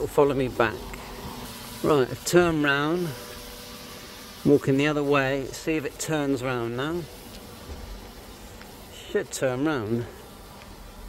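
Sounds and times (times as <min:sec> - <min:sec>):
drone propellers buzzing: 0:00.0 - 0:11.0.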